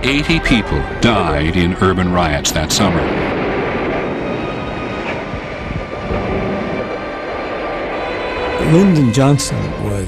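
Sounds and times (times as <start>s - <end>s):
steady rumbling noise: 0.0s - 10.0s.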